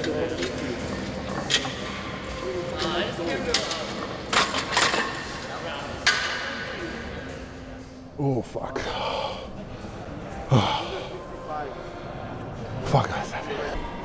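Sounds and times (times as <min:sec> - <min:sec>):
murmur of voices: 0:00.0 - 0:14.0.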